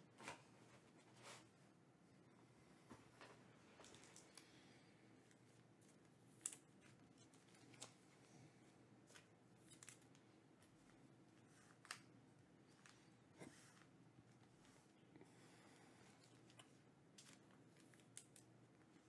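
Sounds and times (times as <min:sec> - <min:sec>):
trading cards clicking and rustling: 0:09.1 - 0:10.8.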